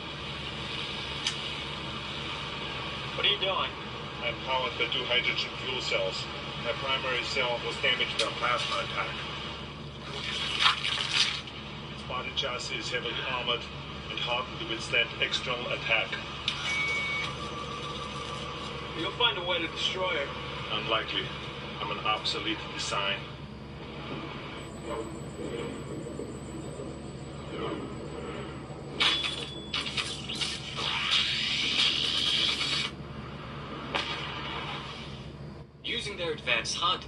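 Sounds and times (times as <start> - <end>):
road and engine noise in vehicle: 0.0 - 37.0
steady high tone: 15.2 - 23.7
mechanical whirring: 16.0 - 35.8
low rumble: 17.5 - 35.8.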